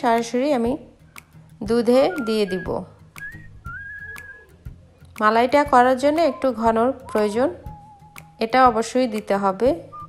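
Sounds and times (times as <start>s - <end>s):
high thin whistling tone: 2.0s - 4.7s, 6.1s - 8.4s.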